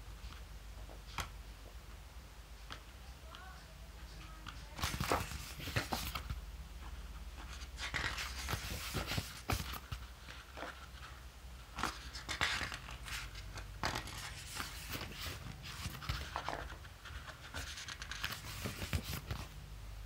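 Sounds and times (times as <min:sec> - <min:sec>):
photobook pages turning: 0:04.5 - 0:19.6.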